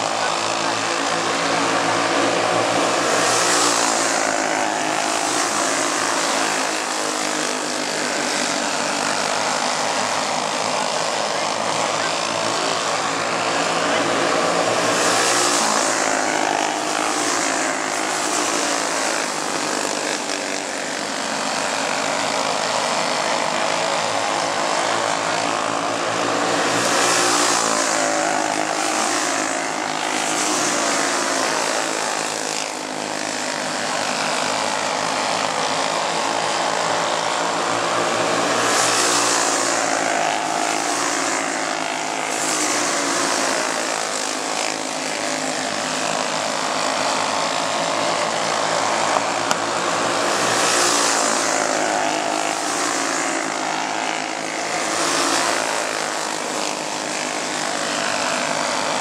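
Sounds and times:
racing kart engines: 0.0 - 59.0.

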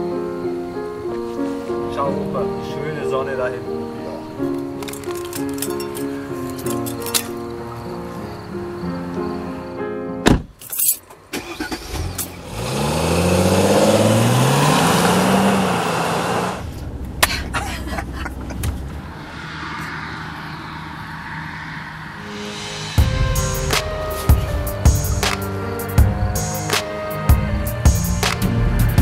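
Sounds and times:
music playing: 0.0 - 10.3, 22.1 - 29.0
road noise inside car: 10.2 - 22.6
car engine accelerating: 11.2 - 29.0.

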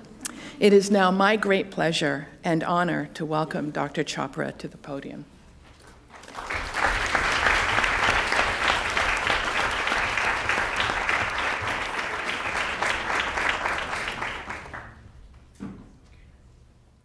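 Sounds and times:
audience applauding: 6.1 - 15.1.

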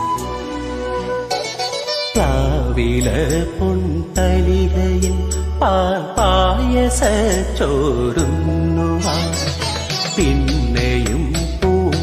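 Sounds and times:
man singing wordless melody: 2.1 - 12.0
backing track with deep bass: 2.2 - 12.0.

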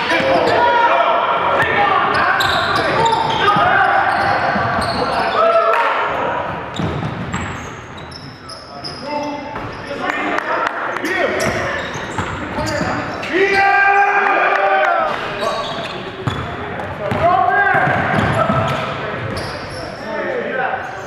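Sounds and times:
sneakers squeaking: 0.0 - 0.8, 1.6 - 10.2, 10.9 - 13.9, 15.0 - 21.0
players calling out: 0.0 - 21.0.

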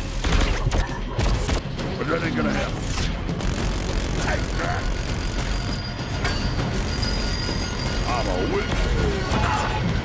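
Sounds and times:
rotary machine gun firing: 3.2 - 5.9.

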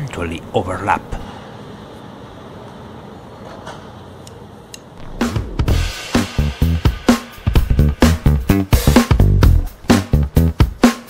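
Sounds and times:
city background hum: 0.0 - 8.8.

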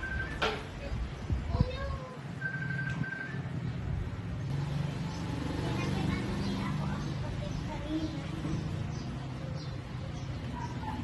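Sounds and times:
short high beeps: 2.4 - 3.5.

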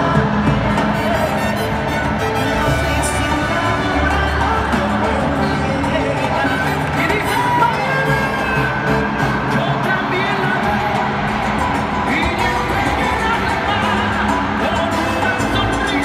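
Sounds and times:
live salsa band playing: 0.0 - 16.0
person singing: 0.0 - 16.0.

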